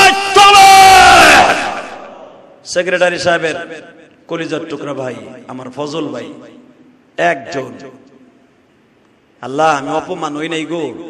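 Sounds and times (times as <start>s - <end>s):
man shouting through loudspeakers: 0.0s - 2.4s.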